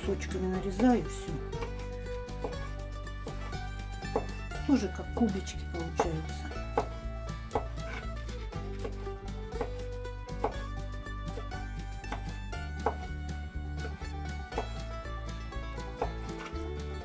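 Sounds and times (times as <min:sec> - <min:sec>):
background music with bass line: 0:00.0 - 0:17.0.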